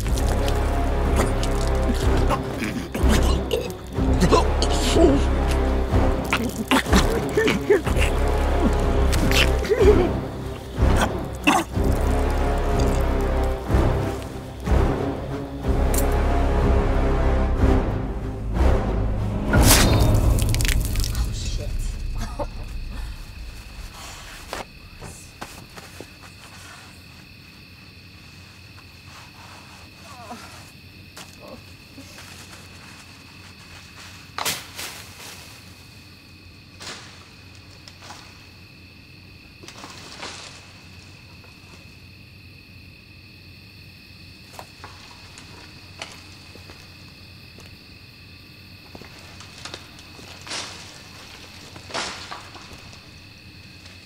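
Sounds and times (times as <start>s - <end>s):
night insects chirring: 0.0s - 54.0s.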